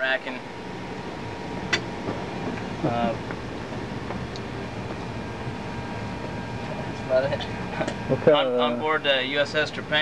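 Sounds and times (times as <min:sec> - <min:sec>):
ventilation and machinery hum: 0:00.0 - 0:10.0.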